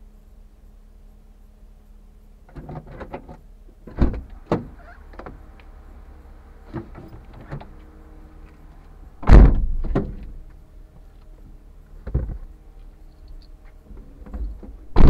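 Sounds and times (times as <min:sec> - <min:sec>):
steady low hum: 0:00.0 - 0:15.0
heavy thuds: 0:09.2 - 0:10.5.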